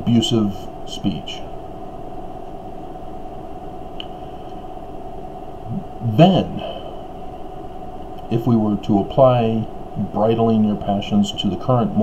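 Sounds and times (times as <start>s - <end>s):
background hum and hiss: 0.0s - 12.0s
faint click: 4.0s - 4.6s.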